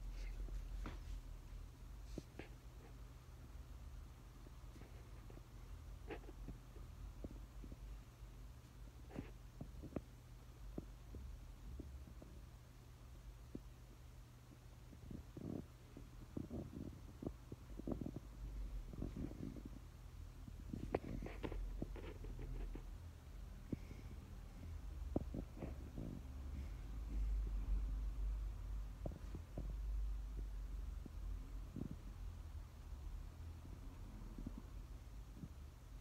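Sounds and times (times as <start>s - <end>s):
faint steady hum: 0.0s - 36.0s
low irregular rumbling: 14.5s - 36.0s.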